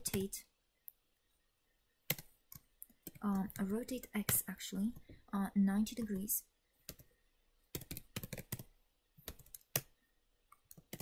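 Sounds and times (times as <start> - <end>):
computer keyboard keystrokes: 2.1 - 5.1, 6.9 - 7.1, 7.7 - 11.0.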